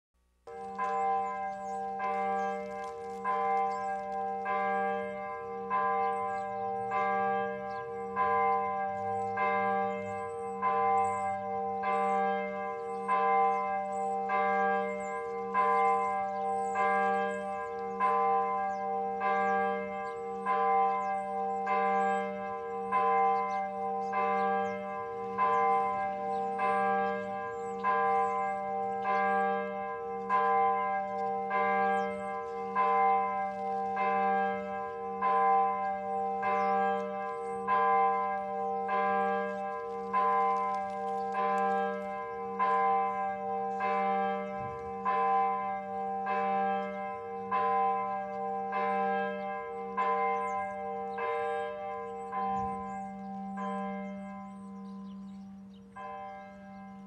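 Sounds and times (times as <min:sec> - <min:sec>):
church bell tolling: 0:00.5 - 0:57.0.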